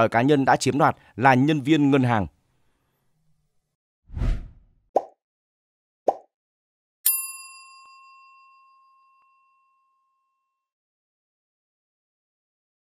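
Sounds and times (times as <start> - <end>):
short whoosh: 4.1 - 4.7
notification bell ding: 7.1 - 10.0.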